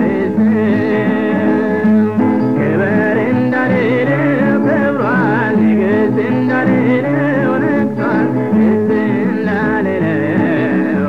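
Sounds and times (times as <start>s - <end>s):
person singing gospel song: 0.0s - 11.0s
sustained instrumental backing: 0.0s - 11.0s.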